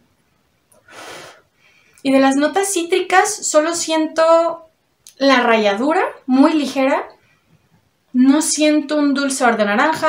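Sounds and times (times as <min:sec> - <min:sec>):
woman sniffing: 0:00.8 - 0:01.6.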